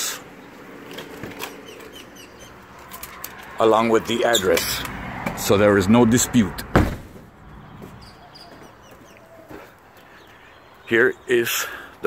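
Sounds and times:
faint bird chirps and clucks: 7.4 - 10.9.

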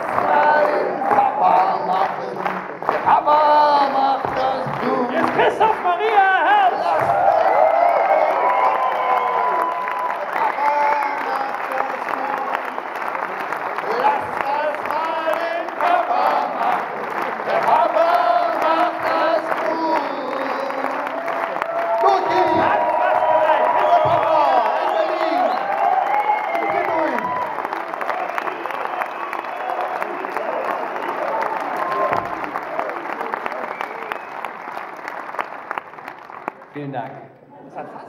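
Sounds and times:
person singing into microphone: 0.0 - 7.2, 13.8 - 21.3
audience clapping and cheering: 0.0 - 37.5.

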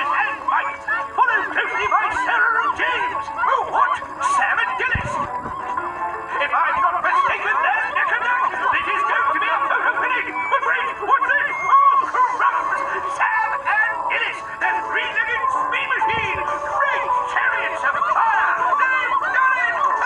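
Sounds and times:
cartoon music: 0.0 - 20.0
overlapping chattering voices: 0.0 - 20.0.

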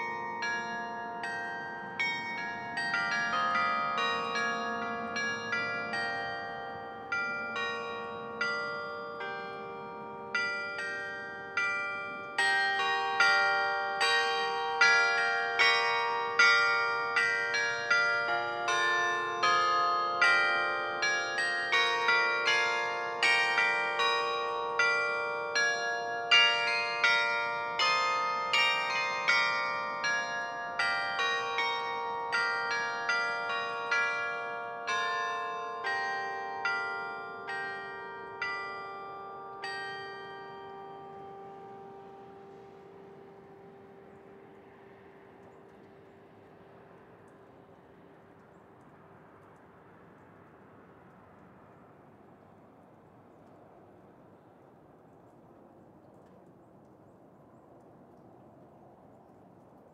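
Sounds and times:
carillon bells playing melody: 0.0 - 46.0.

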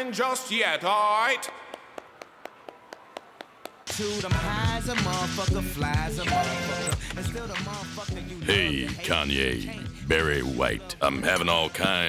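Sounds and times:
music: 3.9 - 12.0
man talking: 8.4 - 12.0.

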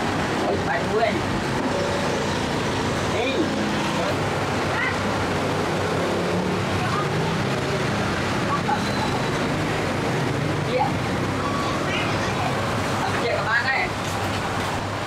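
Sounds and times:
street traffic engines: 0.0 - 15.0.

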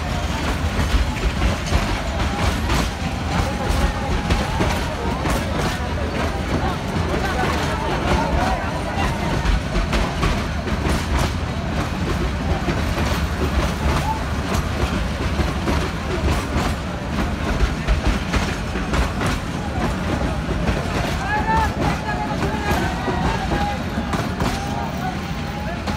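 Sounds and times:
passengers calling out: 0.0 - 25.9
train low rumble: 0.0 - 25.9
train wheels clacking over rail joints: 0.0 - 25.9.

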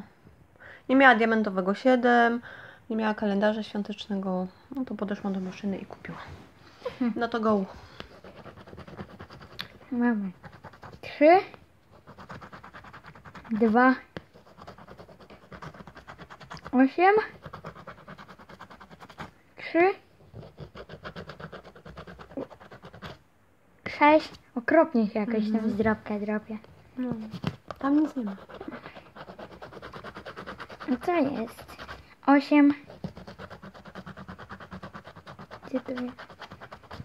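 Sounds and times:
scratch card being scratched: 8.0 - 9.8, 10.4 - 11.1, 11.9 - 19.3, 20.3 - 23.2, 27.1 - 32.0, 32.8 - 37.0.

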